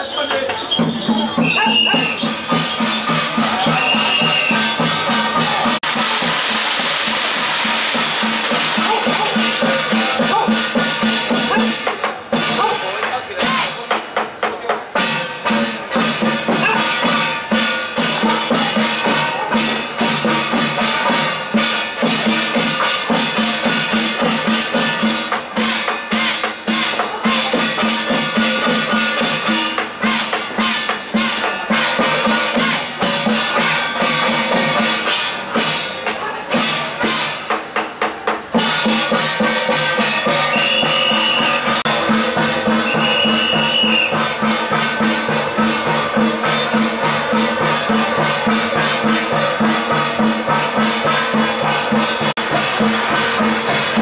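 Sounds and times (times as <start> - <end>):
drum and percussion strikes: 0.0 - 54.0
festive procession melody: 0.0 - 54.0.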